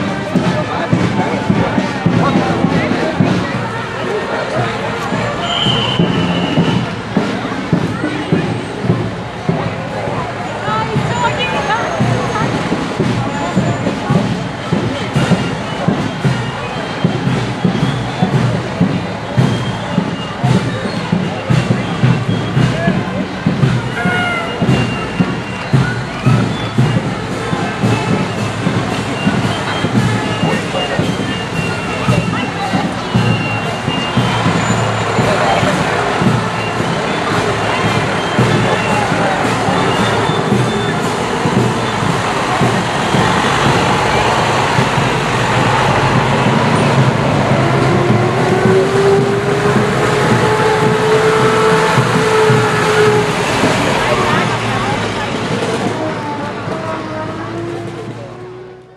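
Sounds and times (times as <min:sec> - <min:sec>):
crowd noise: 0:00.0 - 0:58.9
heavy vehicle engines rumbling: 0:00.0 - 0:58.9
road noise: 0:00.0 - 0:58.9.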